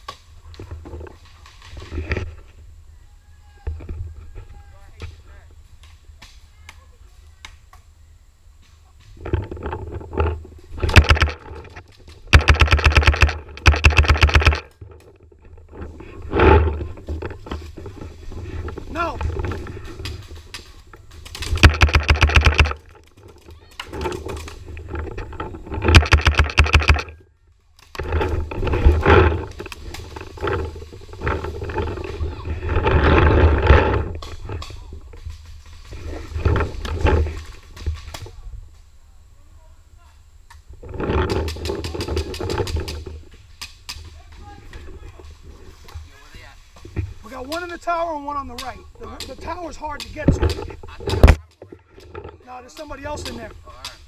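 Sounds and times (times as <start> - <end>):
movement noise: 8.5 - 39.3, 40.0 - 54.0
paintball markers firing: 12.3 - 14.7, 21.3 - 22.8
distant voices: 14.5 - 54.0.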